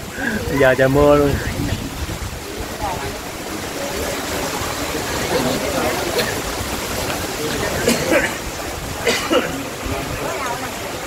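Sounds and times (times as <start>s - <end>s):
faint voices: 0.0s - 11.0s
steady rain falling: 0.0s - 11.0s.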